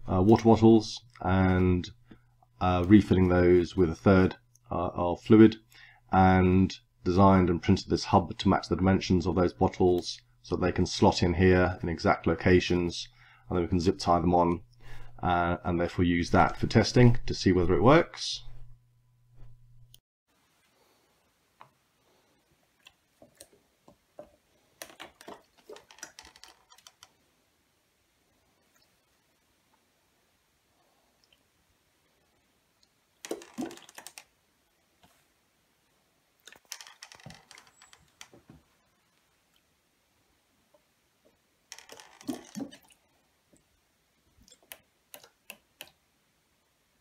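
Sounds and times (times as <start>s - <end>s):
plastic bottles clicking and clattering: 24.8s - 27.0s, 33.2s - 34.3s, 41.8s - 42.9s
water wheel clicks and knocks: 33.2s - 34.2s.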